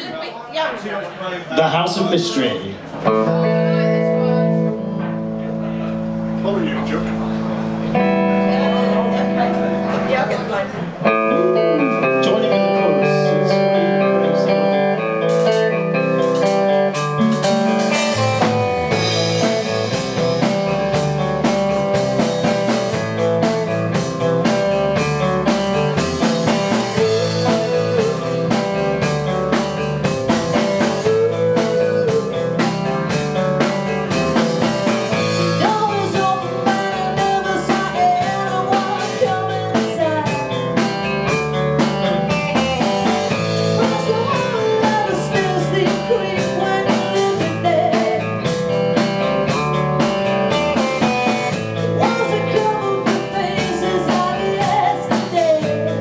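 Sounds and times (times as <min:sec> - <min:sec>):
bass guitar: 0:02.4 - 0:56.0
drum kit beat: 0:02.8 - 0:56.0
electric guitar: 0:02.8 - 0:56.0.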